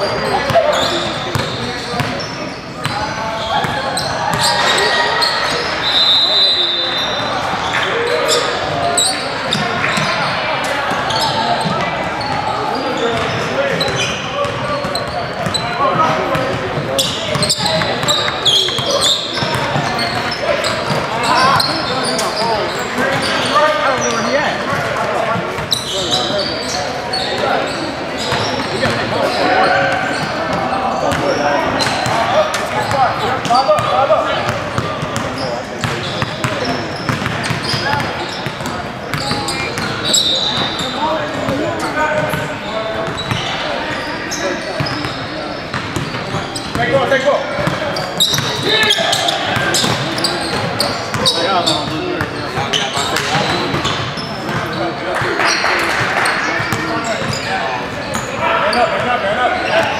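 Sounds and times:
players' voices and calls: 0:00.0 - 0:59.9.

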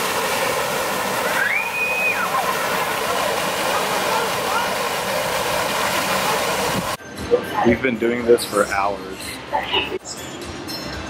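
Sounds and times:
water gushing from fire hydrant: 0:00.0 - 0:07.0.

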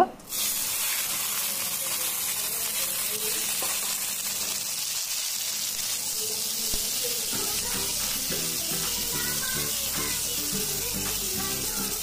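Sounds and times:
vegetables sizzling in hot oil: 0:00.2 - 0:12.0.

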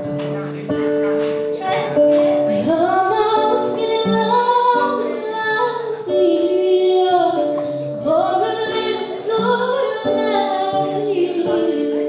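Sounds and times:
acoustic guitar accompaniment: 0:00.0 - 0:12.0
girl singing into a microphone: 0:00.8 - 0:12.0.

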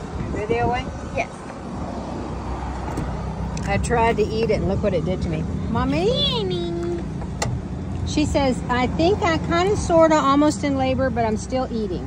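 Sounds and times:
low rumble of vehicle noise: 0:00.0 - 0:12.0.

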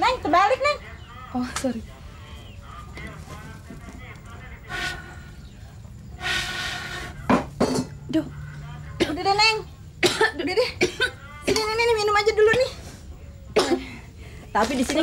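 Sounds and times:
woman blowing through blow pipe: 0:06.2 - 0:07.2
woman coughing: 0:10.0 - 0:11.6, 0:13.6 - 0:14.0.

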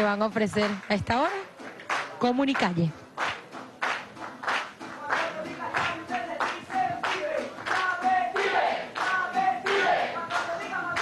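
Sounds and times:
people clapping in time: 0:00.0 - 0:11.0.

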